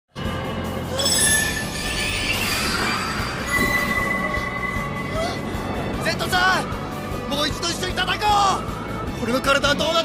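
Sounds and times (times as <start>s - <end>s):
steady high ringing tone: 1.0s - 6.0s.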